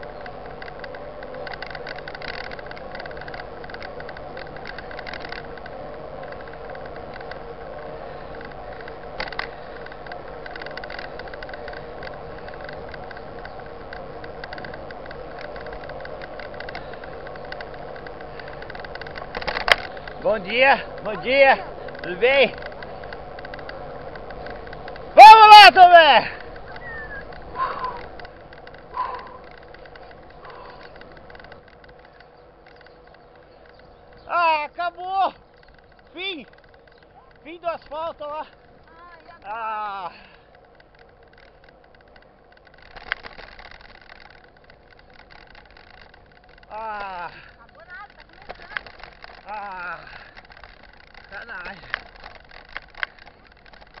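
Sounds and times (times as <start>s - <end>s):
bike rolling on asphalt: 0.0s - 54.0s
bike ticks and rattles: 0.0s - 54.0s.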